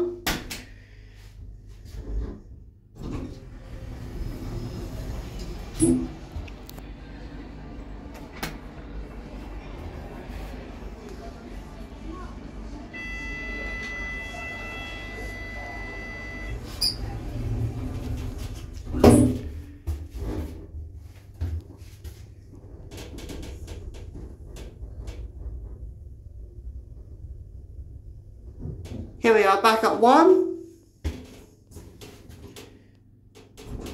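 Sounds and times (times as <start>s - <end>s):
low hum of lift: 0.0s - 29.8s, 30.4s - 33.9s
lift doors shutting thud: 3.0s - 6.7s, 12.8s - 19.8s
electronic buzzer tone: 12.9s - 17.0s.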